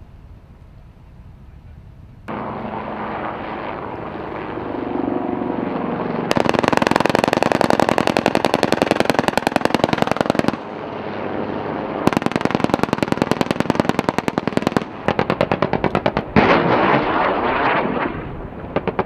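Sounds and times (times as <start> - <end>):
helicopter rotor and turbines: 0.0 - 19.0
helicopter cannon firing burst: 2.3 - 10.8, 12.0 - 19.0.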